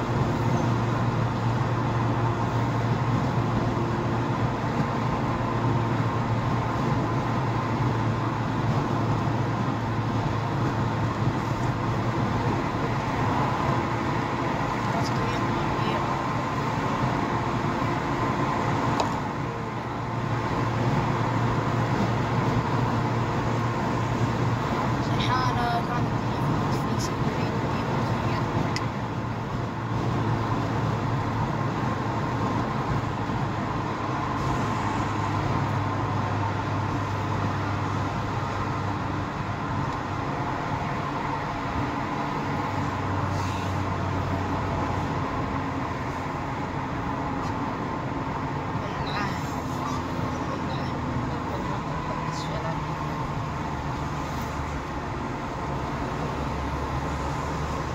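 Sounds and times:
car engine at low revs: 0.0 - 57.9
road noise: 0.0 - 57.9.

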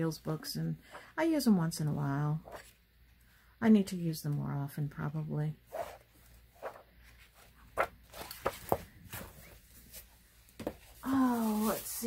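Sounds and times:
book pages rustling: 2.4 - 2.8, 5.7 - 12.0.

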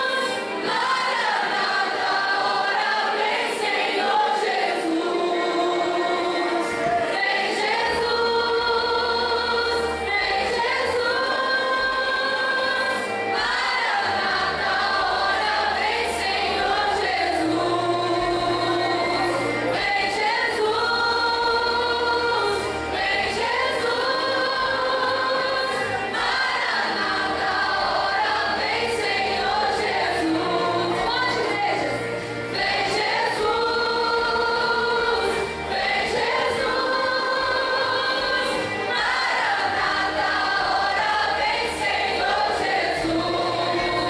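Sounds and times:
choir singing a hymn: 0.0 - 44.0.

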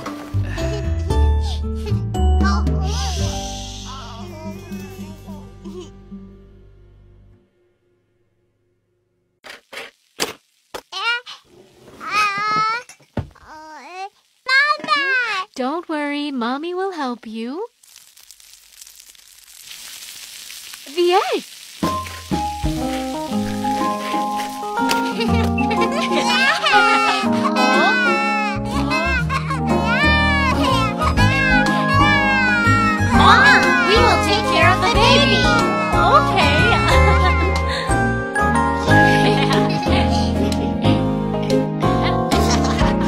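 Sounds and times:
egg sizzling in a pan: 9.4 - 37.5
music with held notes: 22.3 - 43.0
child-like voices singing: 29.8 - 37.2.

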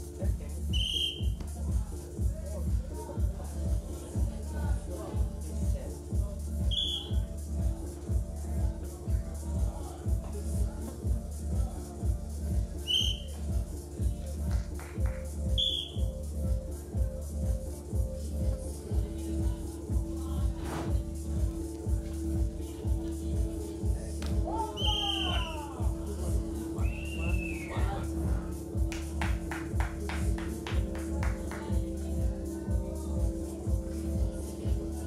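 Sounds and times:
dance music with fast beat: 0.0 - 35.0
referee's whistle blast: 0.7 - 1.3, 6.7 - 7.2, 12.9 - 13.3, 15.6 - 16.0, 24.7 - 25.6.

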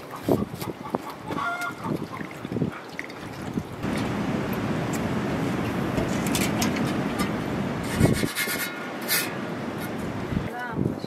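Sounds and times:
handling and splashing noises: 0.0 - 10.5.

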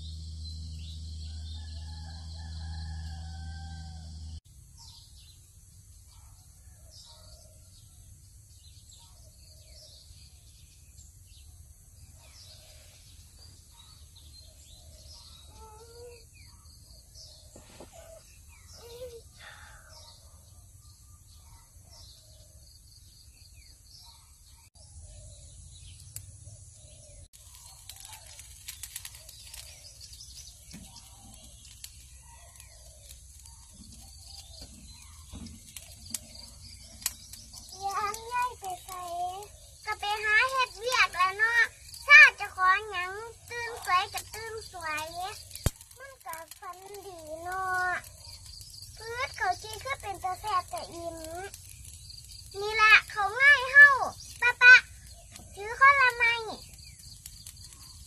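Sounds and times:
low hum: 0.0 - 1.6
birds calling and chirping: 0.0 - 58.0
high insect chorus: 24.8 - 58.0
sharp clicks: 43.5 - 47.1.

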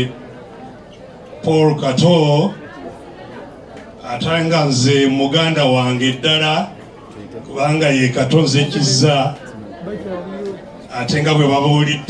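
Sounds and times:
faint background chatter: 0.0 - 12.0
man speaking through pa system: 1.4 - 2.6, 4.0 - 12.0.

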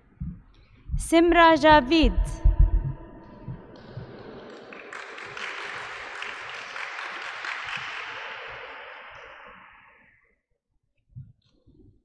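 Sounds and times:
audience applauding: 3.7 - 9.5.

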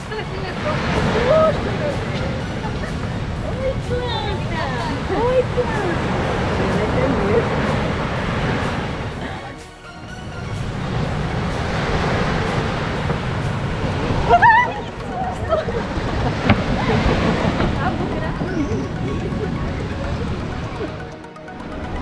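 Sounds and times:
people's voices: 0.0 - 9.7, 14.1 - 21.4
waves: 0.0 - 22.0
wind: 0.0 - 22.0.

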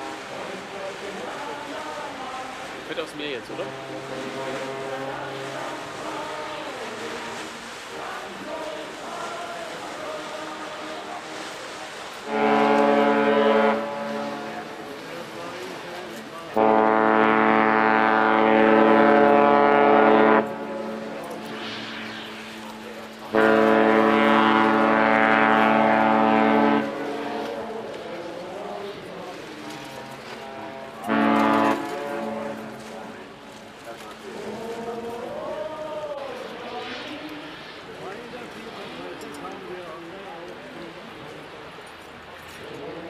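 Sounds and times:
ship's horn blasts: 0.0 - 39.4.

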